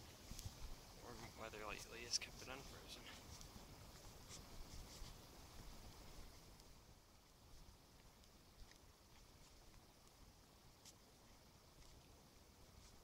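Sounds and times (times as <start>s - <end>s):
faint soft clicks: 7.9s - 10.2s.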